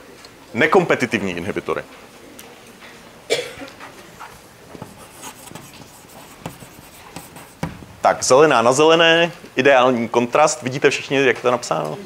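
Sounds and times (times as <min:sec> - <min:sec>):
chalk scratching on chalkboard: 0:04.2 - 0:07.8.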